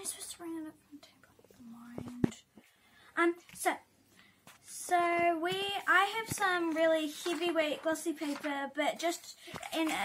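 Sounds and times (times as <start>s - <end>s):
soft whispering: 0.0s - 3.8s.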